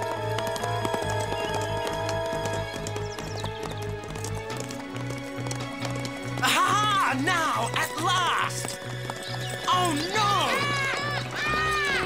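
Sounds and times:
cartoon chase music: 0.0s - 12.0s
horses' hooves galloping: 0.0s - 12.0s
horse whinnying: 10.2s - 12.0s.

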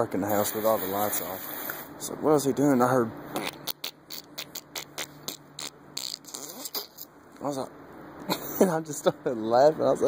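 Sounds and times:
man making spluttering mouth noises: 3.3s - 7.1s.

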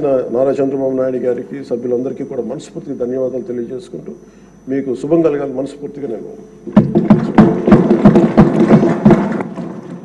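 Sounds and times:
people thumping wooden desks: 6.7s - 10.0s.

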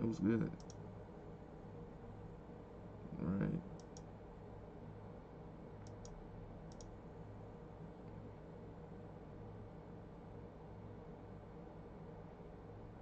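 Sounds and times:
faint low hum: 0.0s - 13.0s
computer mouse clicks: 0.6s - 0.8s, 3.8s - 4.1s, 5.8s - 6.9s.

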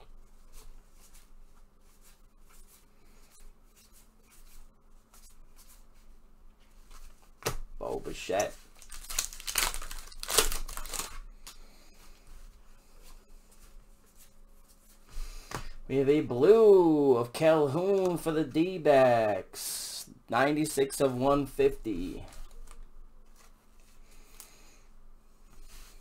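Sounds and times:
wrapper ripping and crinkling: 8.7s - 11.6s.

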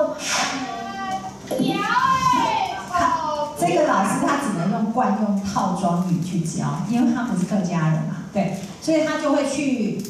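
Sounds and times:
children's voices: 0.0s - 4.4s
high drawn-out voice: 0.6s - 3.6s.

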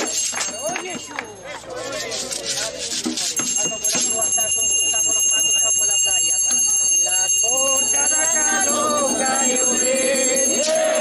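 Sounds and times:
high ringing bell: 0.0s - 2.5s, 3.2s - 11.0s
many voices singing and calling: 0.9s - 4.2s, 7.0s - 11.0s.

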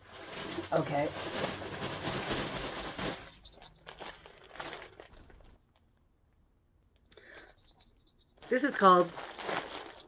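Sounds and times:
plastic packaging rustling: 0.0s - 6.0s, 7.2s - 10.0s.

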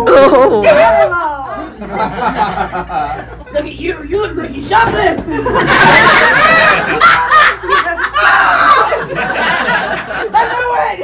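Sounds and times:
audience laughter: 1.6s - 3.6s, 5.3s - 10.5s.

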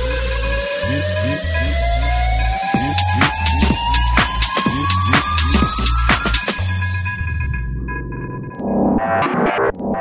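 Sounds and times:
synth pattern: 0.0s - 9.0s
bass: 0.0s - 10.0s.

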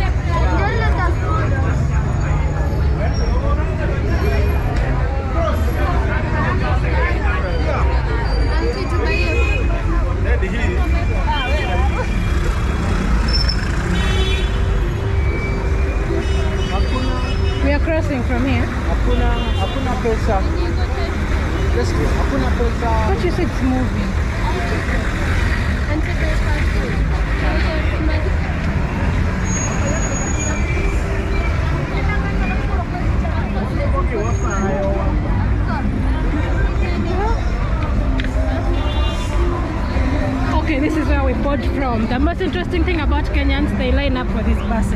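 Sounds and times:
passers-by talking: 0.0s - 44.9s
traffic rumble: 0.0s - 44.9s.

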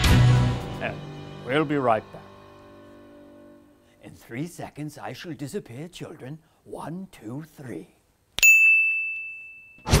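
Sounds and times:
bright bell ding: 8.4s - 9.9s.

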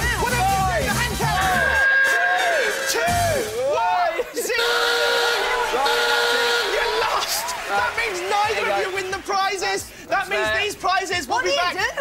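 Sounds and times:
game show background music: 0.0s - 12.0s
men yelling and hollering: 0.0s - 12.0s.

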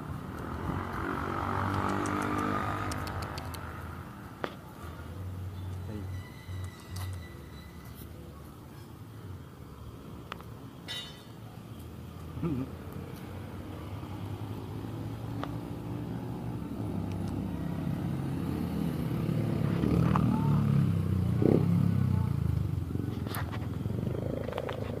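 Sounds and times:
vehicle engine passing by: 0.0s - 6.0s, 12.4s - 25.0s.

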